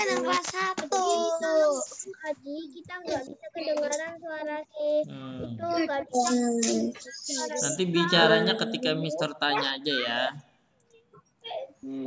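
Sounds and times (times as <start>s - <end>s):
child singing: 0.0s - 10.2s.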